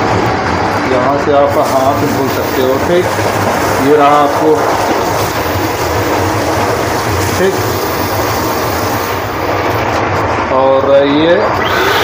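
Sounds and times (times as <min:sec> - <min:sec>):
train coach rumble: 0:00.0 - 0:11.6.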